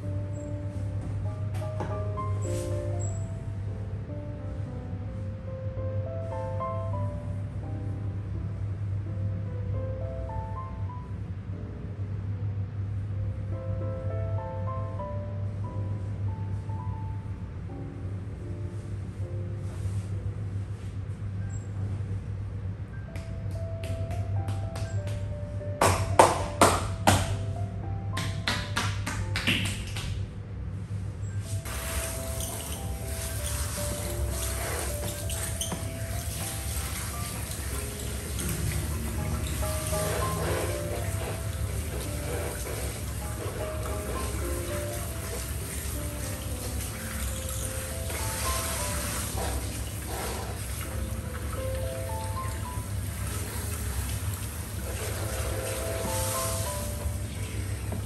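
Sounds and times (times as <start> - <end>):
background music: 0.0 - 30.6, 31.4 - 58.0
hands slapping during massage: 23.1 - 27.4, 28.2 - 30.2
shower sprayer water hissing: 31.6 - 58.0.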